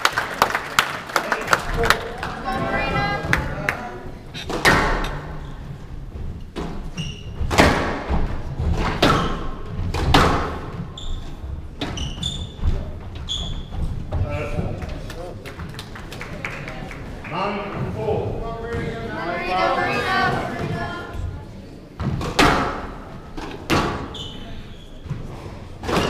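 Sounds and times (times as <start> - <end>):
shoes squeaking on wooden floor: 4.2 - 9.9, 10.7 - 14.8, 23.2 - 26.0
squash ball smacks with echo: 7.5 - 10.7, 22.0 - 24.1.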